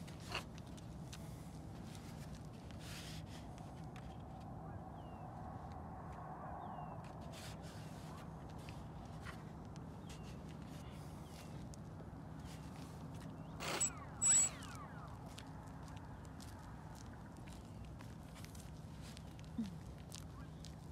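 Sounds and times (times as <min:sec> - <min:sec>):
faint falling chirps: 0:13.6 - 0:15.3.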